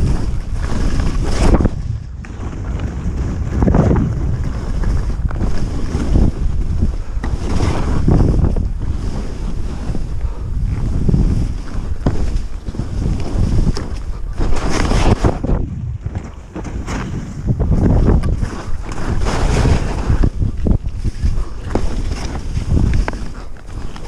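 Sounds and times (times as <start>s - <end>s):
skis swishing through powder snow: 0.0s - 24.0s
wind rumble on microphone: 0.0s - 24.0s.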